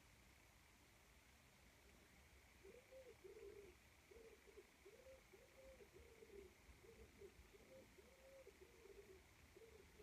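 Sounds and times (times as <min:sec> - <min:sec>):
pigeon cooing: 0:02.6 - 0:10.0.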